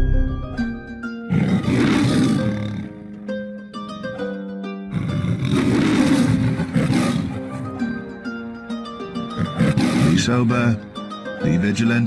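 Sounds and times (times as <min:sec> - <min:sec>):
plucked harp-like music: 0:00.0 - 0:01.3, 0:02.9 - 0:05.4, 0:07.3 - 0:09.4
lion roaring: 0:01.3 - 0:03.0, 0:04.9 - 0:07.6, 0:09.4 - 0:10.3.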